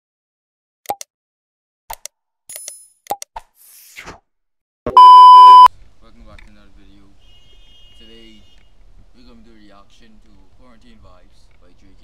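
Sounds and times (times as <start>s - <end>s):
loud high beep: 4.9s - 5.7s.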